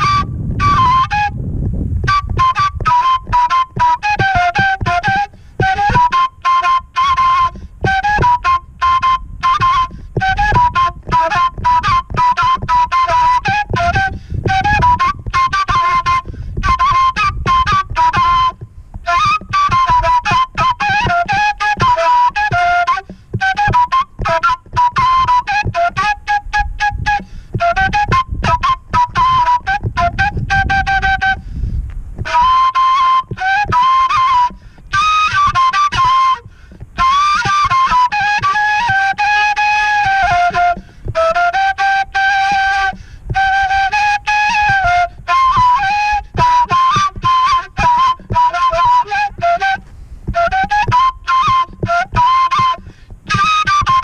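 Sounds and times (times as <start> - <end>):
end-blown flute folk melody: 0.0 - 54.0.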